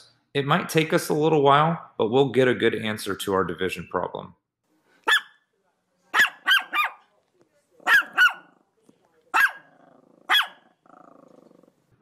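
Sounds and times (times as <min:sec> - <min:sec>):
small dog yapping: 0:05.1 - 0:05.4, 0:06.1 - 0:07.0, 0:07.8 - 0:08.5, 0:09.3 - 0:10.7.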